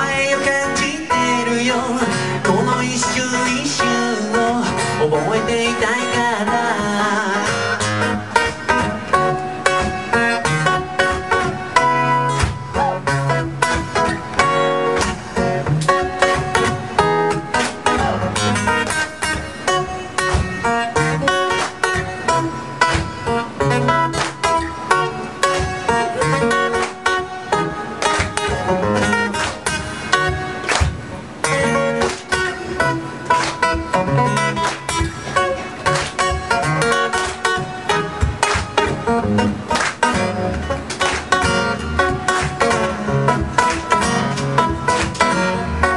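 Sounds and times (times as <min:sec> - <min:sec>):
acoustic guitar picking: 0:00.0 - 0:45.9.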